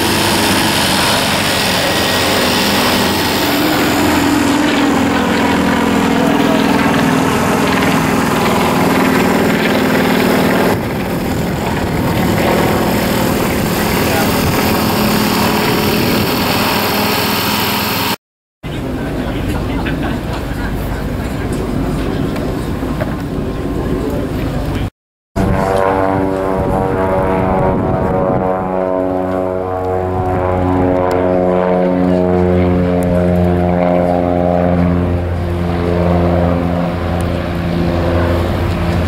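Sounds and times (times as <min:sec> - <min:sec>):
propeller aircraft droning overhead: 0:00.0 - 0:39.0.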